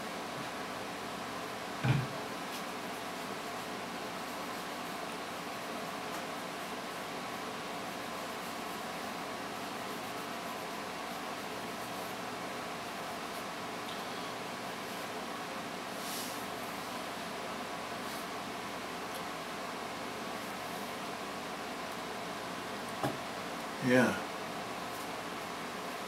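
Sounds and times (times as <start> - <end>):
low hiss with faint hum: 0.0 - 26.0.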